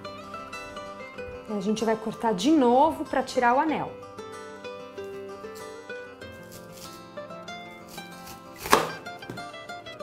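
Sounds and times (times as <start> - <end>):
background music: 0.0 - 10.0
knife slicing onion on board: 6.3 - 7.1, 7.7 - 9.4.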